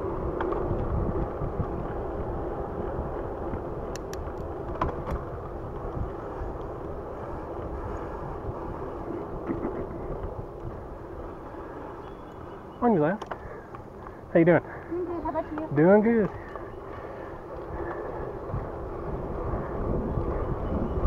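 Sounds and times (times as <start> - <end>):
wind on microphone: 0.0 - 12.7, 15.0 - 21.0
bicycle tyres on pavement: 0.0 - 21.0.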